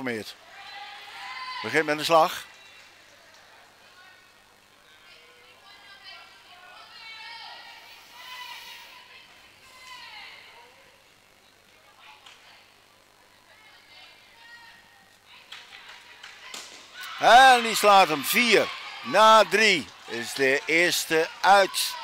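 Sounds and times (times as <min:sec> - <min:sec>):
echoing voices calling out: 0:17.0 - 0:22.0.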